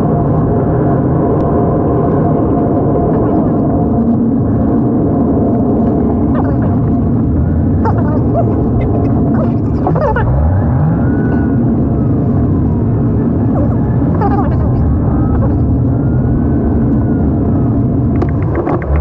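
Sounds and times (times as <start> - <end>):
car road and engine rumble: 0.0 - 19.0
steady hum: 0.0 - 19.0.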